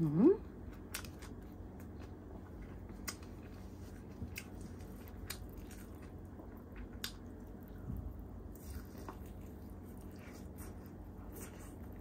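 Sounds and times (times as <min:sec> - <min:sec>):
wet squishing of food: 0:00.6 - 0:12.0
biting and chewing: 0:00.8 - 0:12.0.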